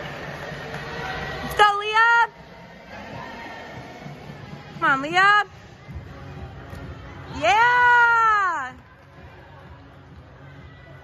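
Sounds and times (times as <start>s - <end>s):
crowd murmur: 2.4s - 4.8s.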